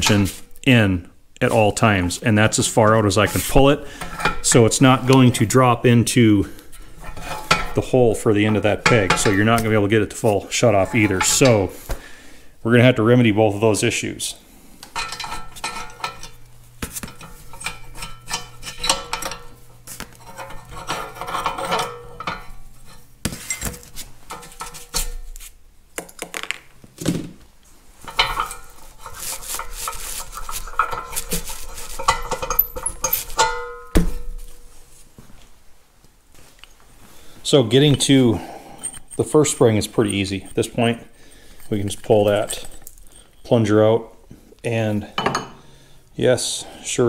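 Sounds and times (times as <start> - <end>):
small steel parts clinking and rattling: 17.0 - 25.3, 28.0 - 33.9, 38.7 - 43.6.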